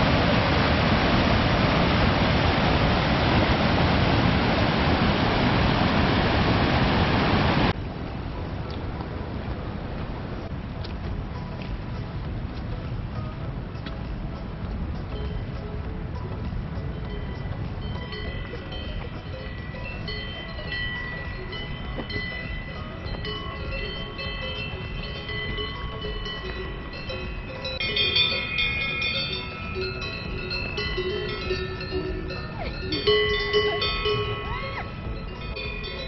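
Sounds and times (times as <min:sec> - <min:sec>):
cowbells clanking: 0:12.7 - 0:36.0.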